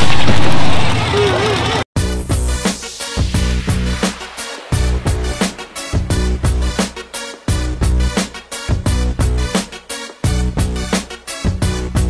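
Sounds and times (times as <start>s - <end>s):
truck engine running loud: 0.0s - 1.9s.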